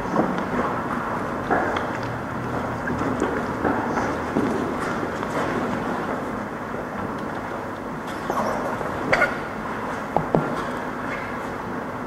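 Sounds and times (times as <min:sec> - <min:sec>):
people shuffling and moving: 0:00.0 - 0:11.8.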